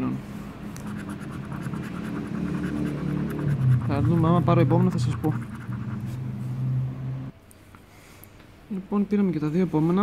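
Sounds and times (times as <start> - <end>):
coin scratching a scratch card: 0.8 - 6.3.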